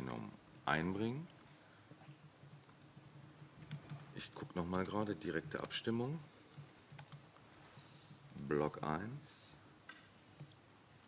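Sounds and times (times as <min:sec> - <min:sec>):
person speaking: 0:00.0 - 0:02.6, 0:03.6 - 0:07.0, 0:08.2 - 0:09.6
laptop keyboard typing: 0:00.0 - 0:08.9, 0:10.3 - 0:10.6.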